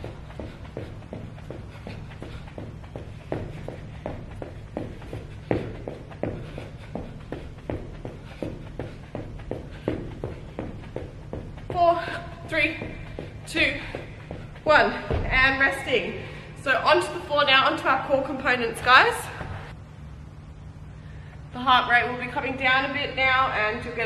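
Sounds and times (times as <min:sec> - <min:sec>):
feet striking the floor: 0:00.0 - 0:15.9
woman speaking: 0:11.7 - 0:13.9, 0:14.6 - 0:19.4, 0:21.6 - 0:24.0.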